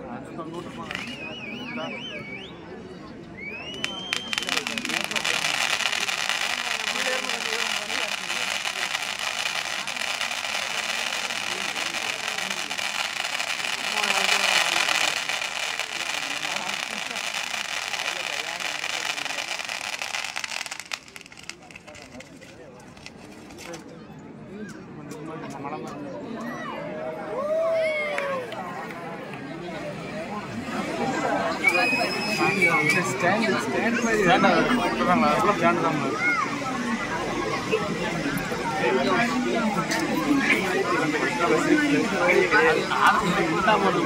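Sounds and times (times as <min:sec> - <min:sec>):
firecrackers crackling: 0:00.6 - 0:01.3, 0:03.7 - 0:23.8
short rising whistle: 0:03.4 - 0:04.6, 0:31.6 - 0:33.1.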